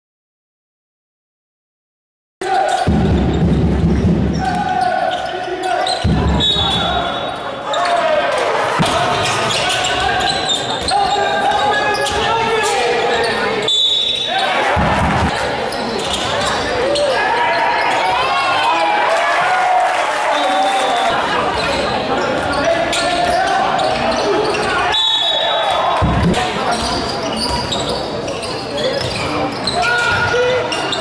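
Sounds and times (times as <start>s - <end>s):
basketball bouncing on court: 2.8s - 4.8s.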